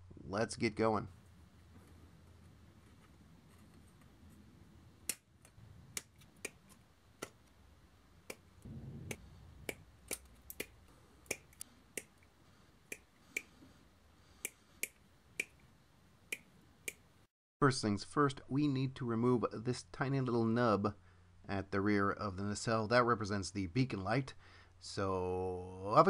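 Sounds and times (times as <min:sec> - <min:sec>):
low rumble: 0:08.6 - 0:11.2.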